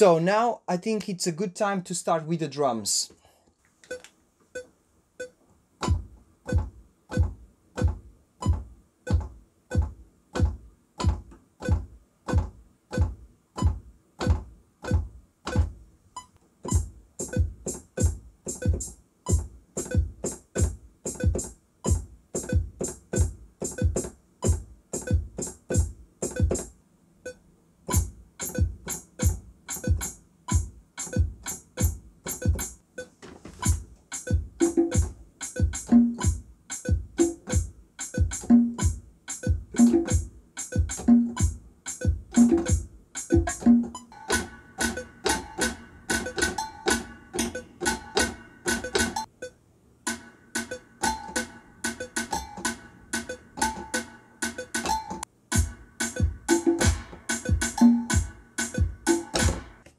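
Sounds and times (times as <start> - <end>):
electronic drums deep beat: 5.8 - 15.8, 16.7 - 26.7, 27.9 - 32.8, 33.6 - 49.3, 50.6 - 59.8
fast hi-hat pattern: 16.7 - 26.7, 27.9 - 32.8, 33.6 - 49.3, 50.1 - 59.8.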